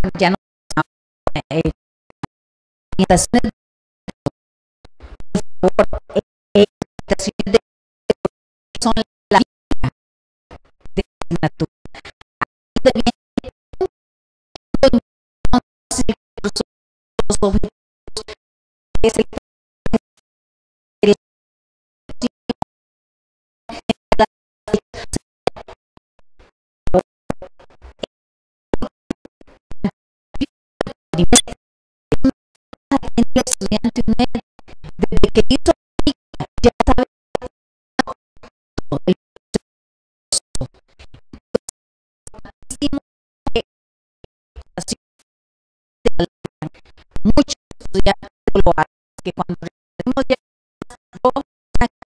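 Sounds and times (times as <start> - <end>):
chopped speech over a microphone: 0.0 - 1.8, 3.0 - 3.6, 5.0 - 7.6, 8.2 - 9.4, 14.8 - 16.6, 19.0 - 19.4, 30.4 - 32.3, 32.9 - 37.1, 44.8 - 45.0, 46.1 - 51.9
woman's garbled amplified speech: 0.0 - 1.8, 3.0 - 3.5, 5.7 - 7.6, 19.0 - 19.3, 31.2 - 31.5, 32.9 - 34.4, 47.3 - 48.9.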